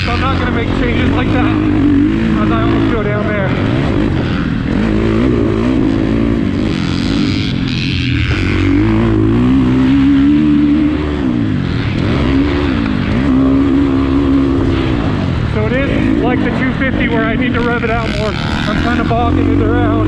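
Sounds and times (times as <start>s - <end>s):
motorcycle engine lugging at low revs: 0.0s - 20.0s.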